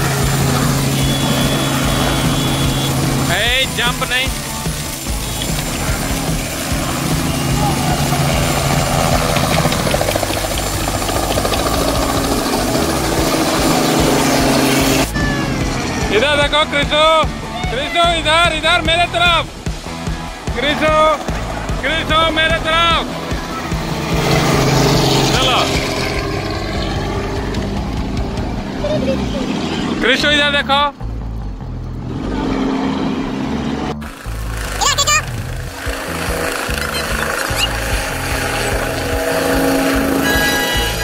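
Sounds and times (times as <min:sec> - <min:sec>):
helicopter engine: 0:00.0 - 0:41.0
helicopter rotor chopping: 0:00.0 - 0:41.0.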